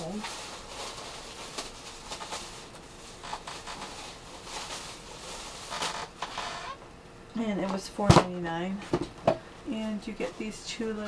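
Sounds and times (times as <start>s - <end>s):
cardboard box and papers rustling: 0.0s - 6.7s.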